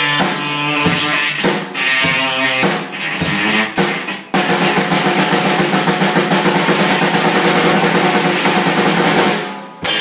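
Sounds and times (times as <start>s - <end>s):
electric guitar chords: 0.0s - 4.3s
fast drum strokes: 0.0s - 10.0s.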